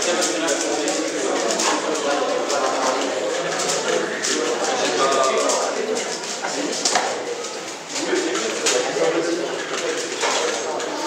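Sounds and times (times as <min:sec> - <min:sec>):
murmur of people talking: 0:00.0 - 0:11.0.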